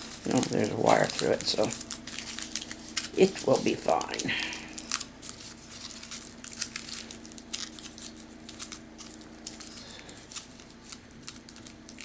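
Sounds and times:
aluminium foil crinkling: 0.0s - 12.0s
faint steady hum: 0.0s - 12.0s.

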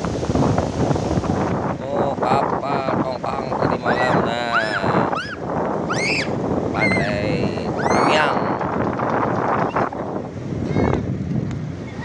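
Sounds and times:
wind buffeting microphone: 0.0s - 12.0s
high-pitched calls: 3.9s - 7.2s, 7.8s - 8.3s.

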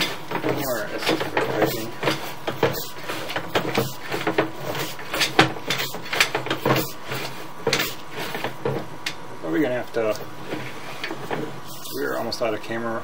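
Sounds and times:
push rod clunking and rattling: 0.0s - 9.2s.

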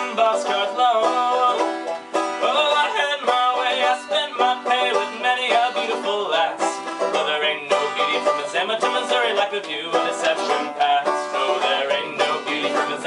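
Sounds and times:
banjo strummed and picked: 0.0s - 13.0s
man singing folk song: 0.0s - 13.0s.

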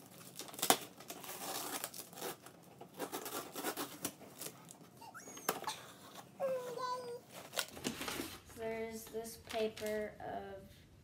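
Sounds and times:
packing tape tearing off cardboard: 0.0s - 4.8s, 7.3s - 8.4s.

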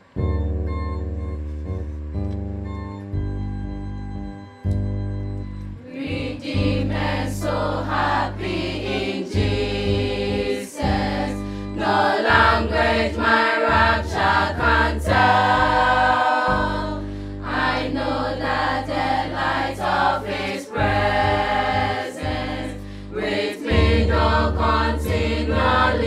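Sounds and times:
electronic keyboard chords: 0.0s - 26.0s
children's choir singing gospel: 5.8s - 26.0s.

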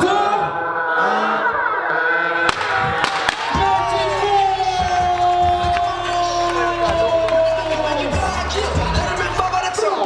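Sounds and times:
crowd shouting countdown: 0.0s - 10.0s
music with deep beat: 2.6s - 10.0s.

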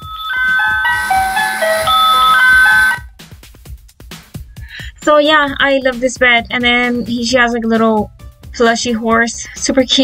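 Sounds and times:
electronic lullaby tune: 0.0s - 3.0s.

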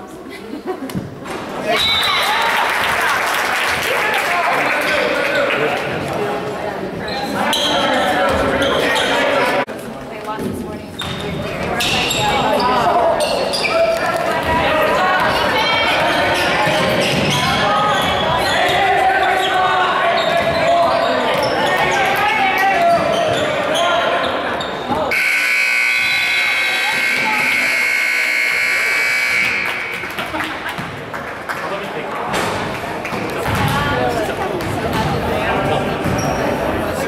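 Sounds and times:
people calling out: 25.0s - 30.4s
long steady buzzer: 25.1s - 30.0s.

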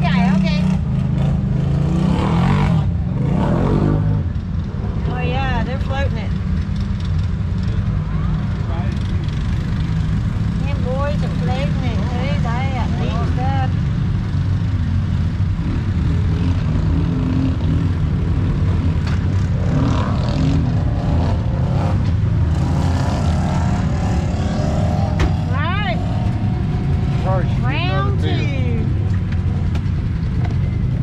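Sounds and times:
vehicle engine droning: 0.0s - 31.0s.

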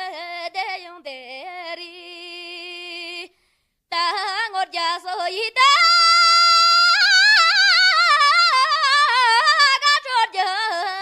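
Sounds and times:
high solo voice singing folk song: 3.9s - 11.0s.

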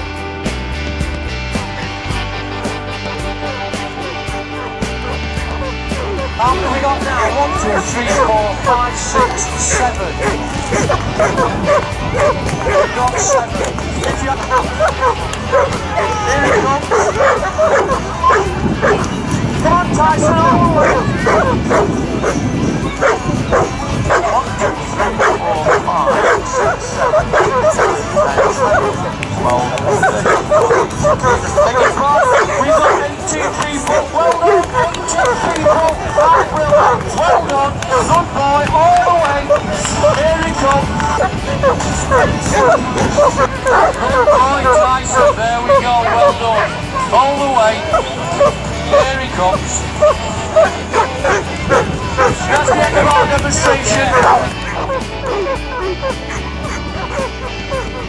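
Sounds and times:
music: 0.0s - 58.0s
people chattering: 1.7s - 58.0s
dogs barking and yipping: 2.9s - 58.0s.

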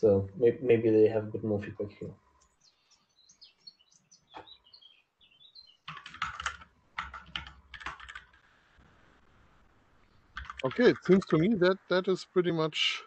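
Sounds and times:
faint bird chirps: 0.1s - 6.0s
computer keyboard typing: 5.9s - 8.4s, 10.4s - 11.4s.

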